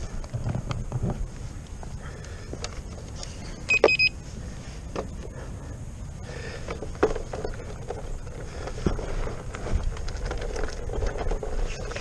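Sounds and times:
short high beeps: 3.7 - 4.2
tyre rumbling on gravel: 6.3 - 12.0.

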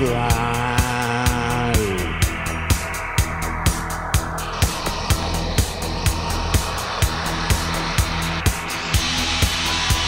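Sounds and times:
droning bass and guitar: 0.0 - 10.0.

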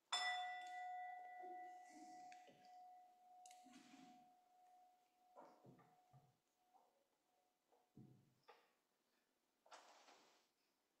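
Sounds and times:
small bell ringing: 0.1 - 6.1.

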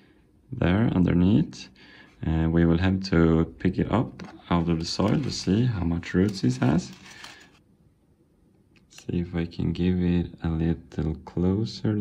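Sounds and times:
person speaking: 0.5 - 7.6.

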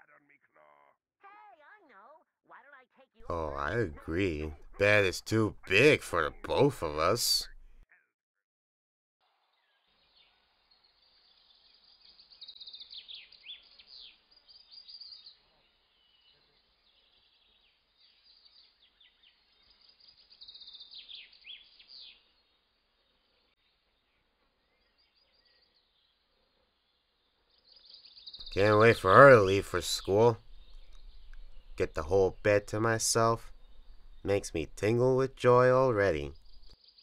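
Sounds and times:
birds chirping: 3.2 - 7.8, 9.7 - 22.5, 23.2 - 37.0
low hiss: 28.4 - 36.8.

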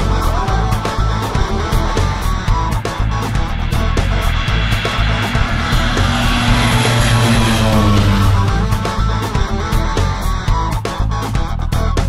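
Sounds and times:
rock music with guitar: 0.0 - 12.0
propeller aircraft engines droning: 1.3 - 10.5.

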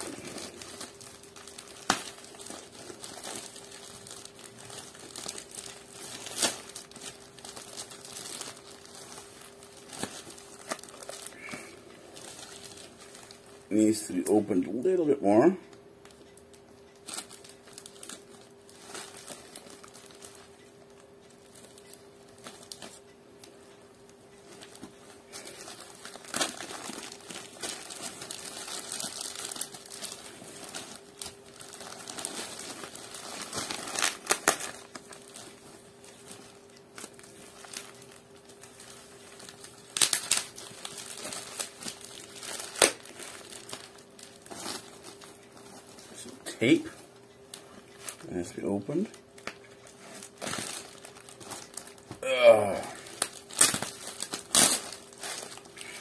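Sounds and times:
wrapping tearing: 0.0 - 13.9, 17.0 - 23.1, 24.4 - 56.0
package wrapping crinkling: 0.0 - 14.1, 16.0 - 52.2, 52.9 - 56.0.

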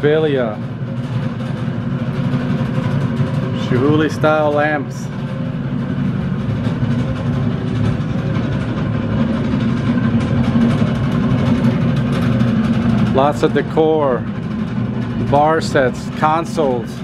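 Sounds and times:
loud low rumble: 0.0 - 17.0.

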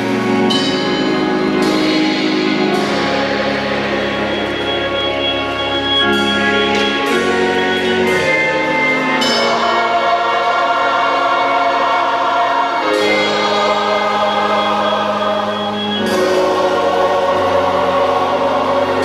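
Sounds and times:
choir singing gospel music: 0.0 - 19.0.

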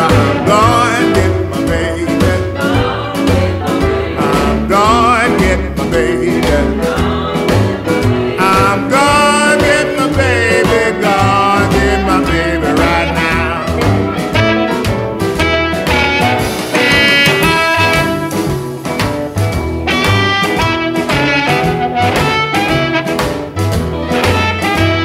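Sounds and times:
bass and drum groove: 0.0 - 25.0
lead instrument bending notes: 0.0 - 25.0.

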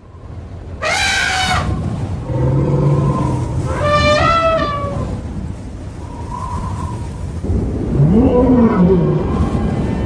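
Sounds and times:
elephant-like trumpeting calls: 0.8 - 5.2
low rumble: 1.6 - 10.0.

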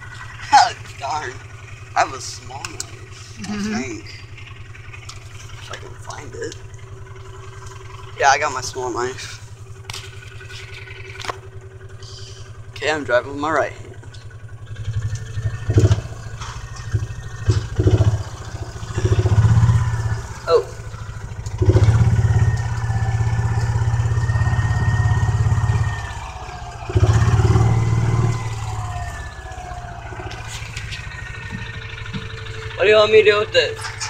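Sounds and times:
vehicle engine accelerating: 0.0 - 34.0.

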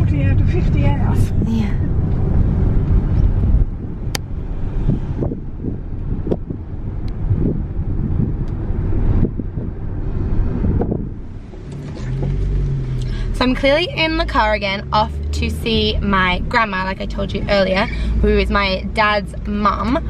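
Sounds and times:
car cabin road noise: 0.0 - 20.0.

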